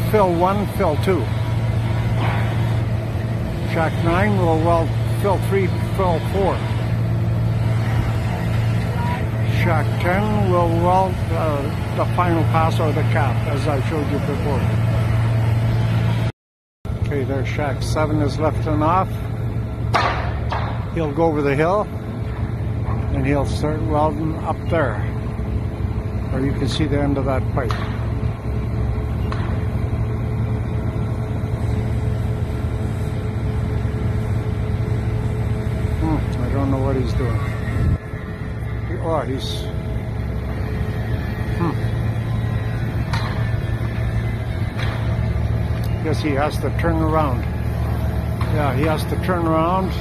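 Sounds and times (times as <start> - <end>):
heavy diesel equipment droning: 0.0 - 16.3, 16.9 - 50.0.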